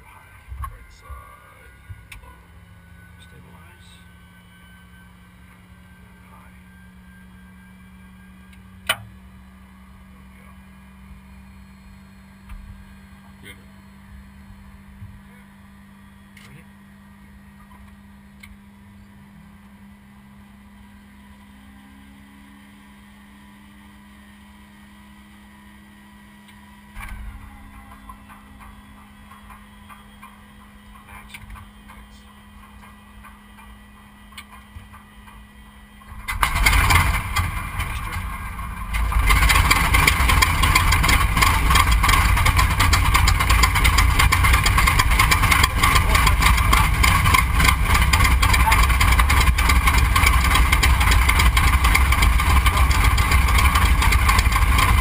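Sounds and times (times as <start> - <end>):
electrical hum: 0.0 - 55.0
radial engine firing and running: 25.7 - 55.0
starter motor whine: 26.4 - 55.0
engine cranking with clicks: 36.1 - 55.0.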